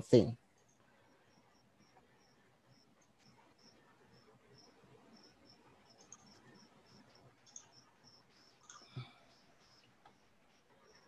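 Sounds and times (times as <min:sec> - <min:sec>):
high-pitched insect-like chirps: 0:00.6 - 0:11.0.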